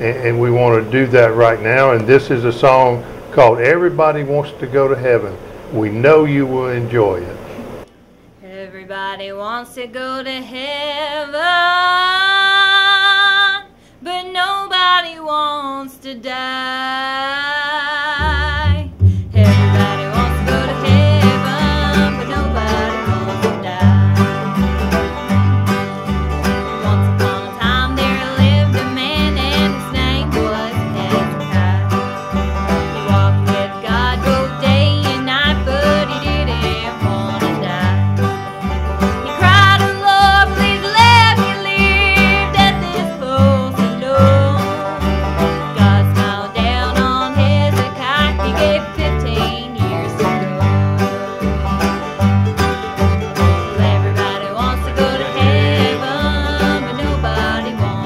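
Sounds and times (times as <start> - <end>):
banjo: 0.0 - 5.4, 18.2 - 58.0
mandolin: 0.0 - 7.5, 18.2 - 58.0
acoustic guitar: 0.0 - 58.0
upright bass beat: 18.2 - 46.0.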